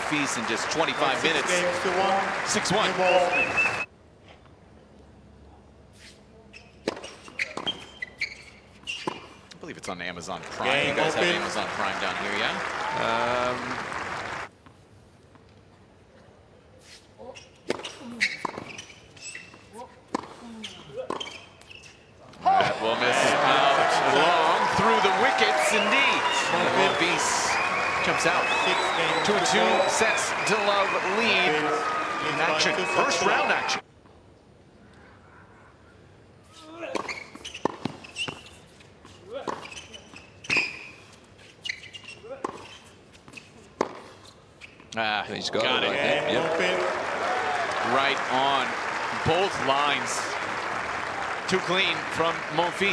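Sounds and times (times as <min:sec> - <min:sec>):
players grunting: 0:22.4 - 0:33.8.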